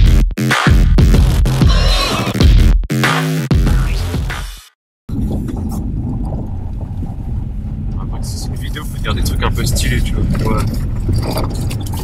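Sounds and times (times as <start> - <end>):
car engine and tyres rumbling: 5.1 - 12.0.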